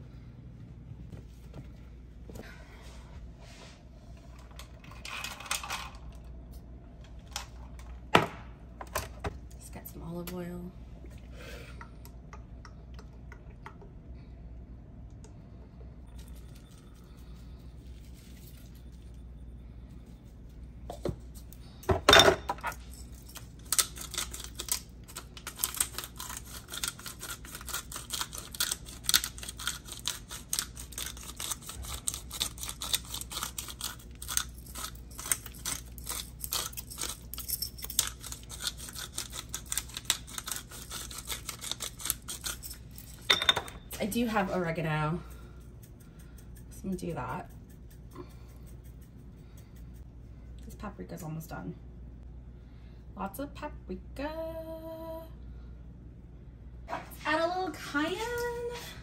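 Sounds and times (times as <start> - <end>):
spice grinder cracking peppercorns: 23.3 - 43.3.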